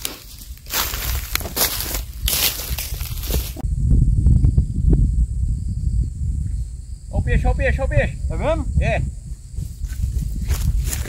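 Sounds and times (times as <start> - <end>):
footsteps crunching on dry stalks: 0.0 - 3.6, 9.6 - 11.0
steady low rumble: 0.0 - 11.0.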